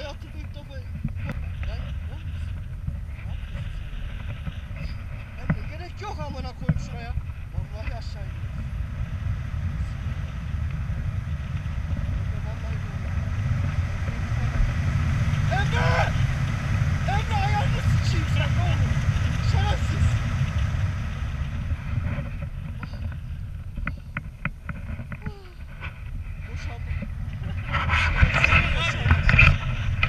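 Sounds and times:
wind rushing over microphone: 0:00.0 - 0:30.0.

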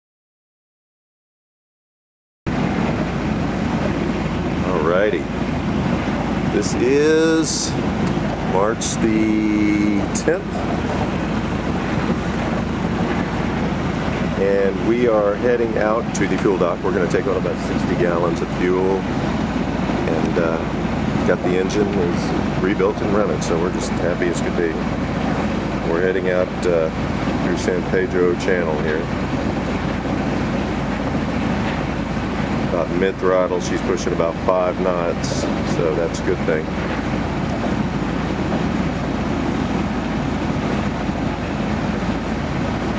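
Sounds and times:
diesel boat engine rumbling: 0:02.5 - 0:42.9.

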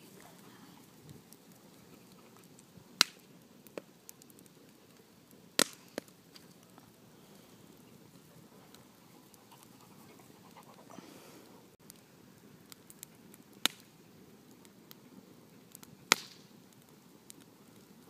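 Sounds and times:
bonfire crackling and popping: 0:00.0 - 0:18.0.

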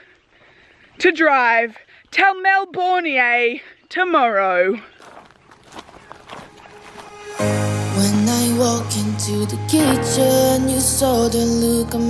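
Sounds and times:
footsteps on dirt and grass: 0:04.9 - 0:07.5, 0:09.8 - 0:10.3.

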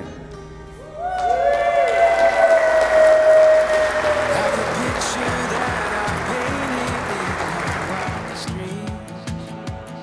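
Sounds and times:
crowd applauding: 0:01.0 - 0:08.9.

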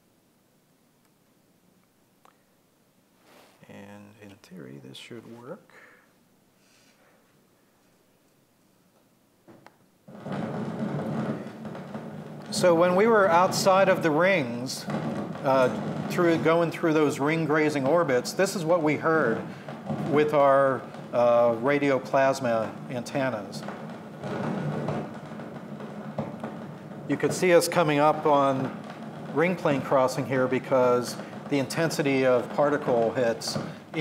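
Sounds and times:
steady hiss over loudspeakers: 0:00.0 - 0:08.8, 0:10.0 - 0:34.0.

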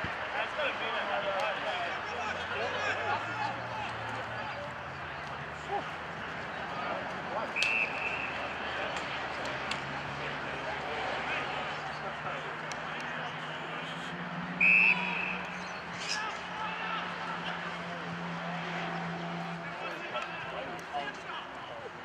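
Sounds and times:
players and onlookers shouting: 0:00.0 - 0:22.0
umpire's whistle blast: 0:07.6 - 0:08.3, 0:14.6 - 0:16.2.

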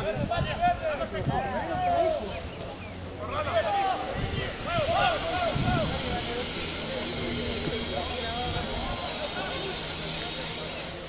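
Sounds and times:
voices shouting: 0:00.0 - 0:10.4.

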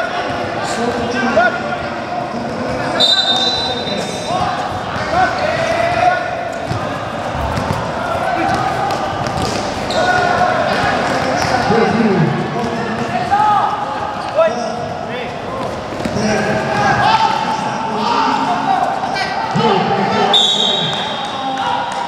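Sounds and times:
players shouting: 0:00.0 - 0:22.0
basketball bouncing on court: 0:06.6 - 0:11.7.

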